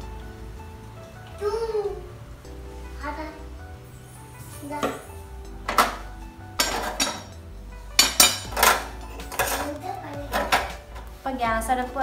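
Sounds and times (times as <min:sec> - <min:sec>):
metal kitchenware clattering: 0:06.6 - 0:11.1.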